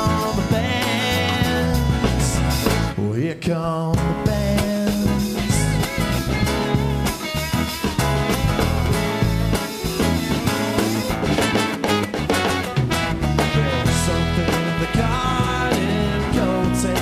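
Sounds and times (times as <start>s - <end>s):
drum kit beat: 0.0s - 3.0s, 3.9s - 17.0s
strummed acoustic guitar: 0.0s - 3.0s, 4.0s - 17.0s
bass notes: 0.0s - 17.0s.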